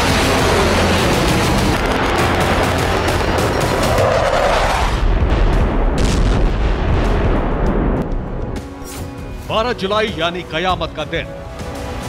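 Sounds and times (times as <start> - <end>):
dramatic music: 0.0 - 12.0
explosions: 1.7 - 8.1.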